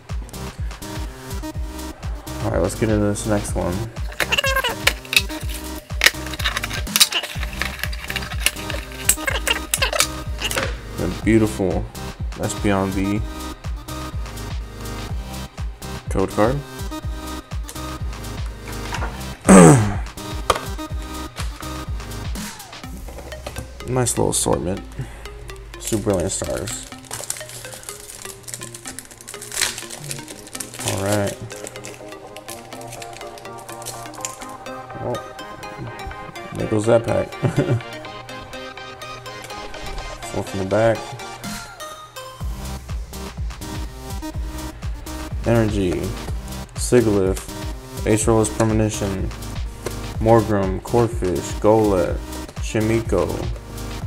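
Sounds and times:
background music: 0.0 - 54.0
foil wrapper crinkling: 4.0 - 10.7, 25.9 - 34.6
metal tin lid clattering: 4.1 - 10.8.

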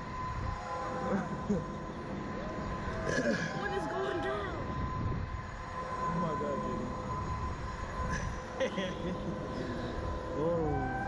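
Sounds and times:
wind rushing over microphone: 0.0 - 0.7, 3.7 - 6.1
faint steady whine: 0.0 - 11.0.

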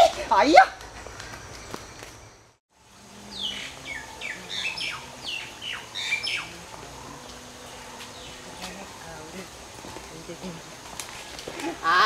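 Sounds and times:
faint outdoor background noise: 0.0 - 12.0
bird chirping: 0.8 - 11.4.

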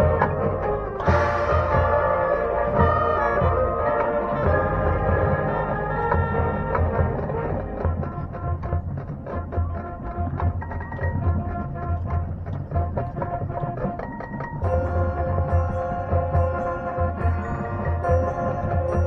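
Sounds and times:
low drum strikes: 0.0 - 13.4
marching band playing: 0.0 - 19.0.

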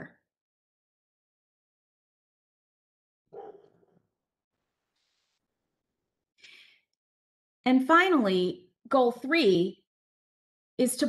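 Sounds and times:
person inhaling: 6.4 - 6.9.

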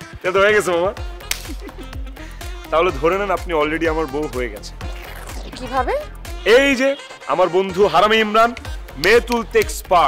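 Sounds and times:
background music: 0.0 - 10.0
hand slapping head: 1.2 - 1.8, 8.6 - 9.8.

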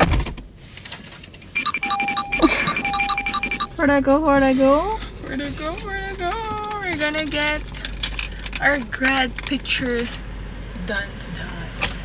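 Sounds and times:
bright electronic chime tones: 1.6 - 3.8.

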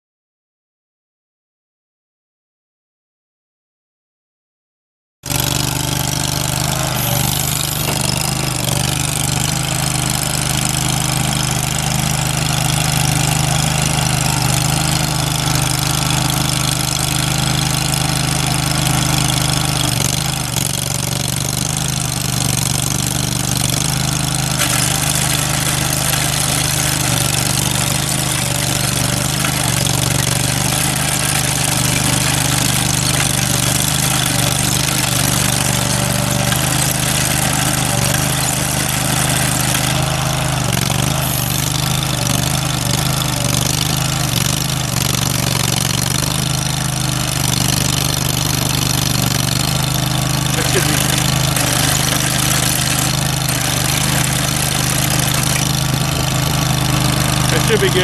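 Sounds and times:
gas engine running steadily: 5.3 - 58.0.

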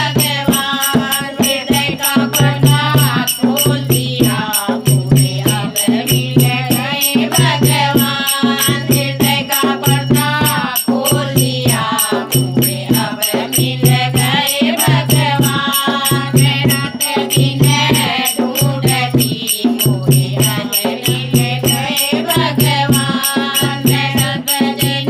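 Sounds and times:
dholak drum beat: 0.0 - 25.0
women singing together: 0.0 - 25.0.

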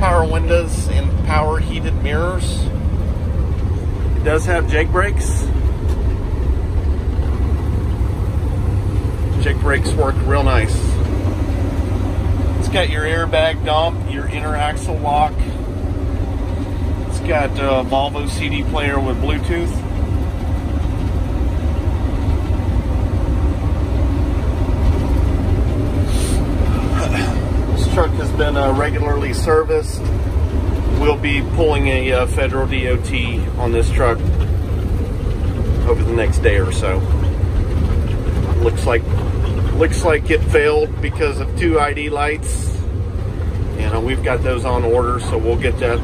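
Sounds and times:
diesel engine brake rumble: 0.0 - 46.0
road noise: 0.0 - 46.0.

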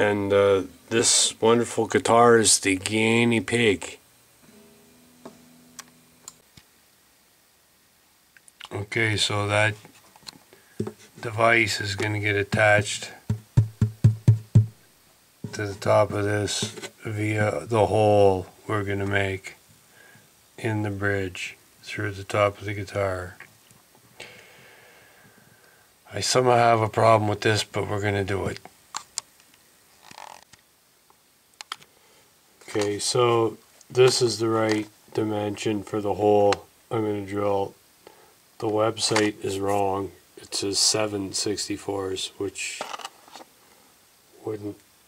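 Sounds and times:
soft hiss: 0.0 - 45.0
acoustic guitar string ringing: 4.4 - 6.4.

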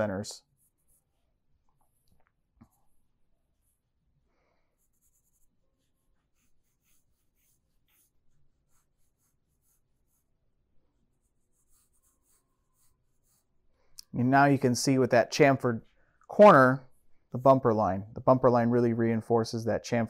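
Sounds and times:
pencil scratching on paper: 0.4 - 2.0, 4.7 - 13.7.

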